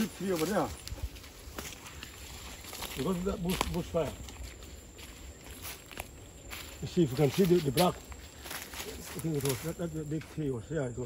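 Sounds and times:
footsteps in dry grass: 0:00.0 - 0:10.8.

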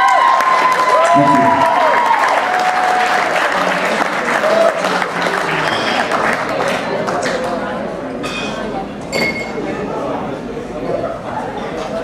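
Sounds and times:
crowd chatter: 0:00.0 - 0:12.0
glassware clinking: 0:08.2 - 0:09.7.

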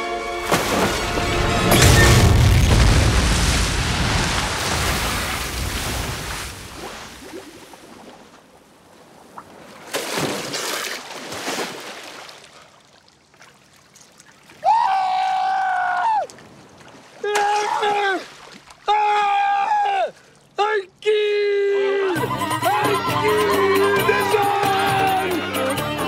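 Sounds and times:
water splash: 0:00.2 - 0:14.6, 0:16.3 - 0:18.9
underwater explosion boom: 0:00.5 - 0:06.9.

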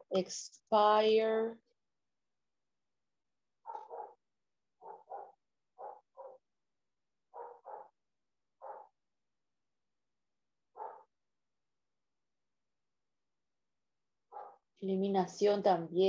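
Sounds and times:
dog barking: 0:03.7 - 0:04.2, 0:04.8 - 0:06.4, 0:07.3 - 0:08.0, 0:08.6 - 0:09.0, 0:10.8 - 0:11.1, 0:14.3 - 0:14.6.

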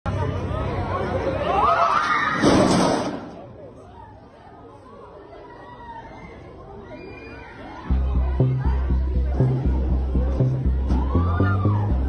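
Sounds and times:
crowd talking and calling out: 0:00.1 - 0:12.0
loud crash of bleachers collapsing: 0:01.9 - 0:03.5.

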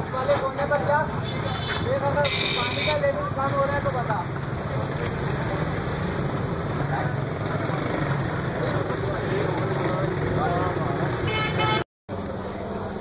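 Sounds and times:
street background noise: 0:00.0 - 0:13.0
vehicle horn tooting: 0:11.2 - 0:11.8.

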